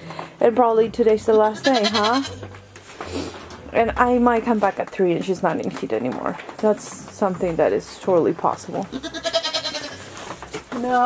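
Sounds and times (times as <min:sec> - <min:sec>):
goat bleating: 0:01.3 - 0:02.4, 0:08.9 - 0:10.1.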